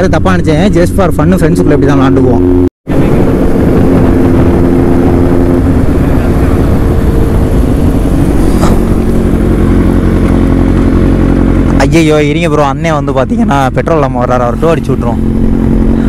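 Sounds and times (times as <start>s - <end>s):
motorcycle engine running: 0.0s - 16.0s.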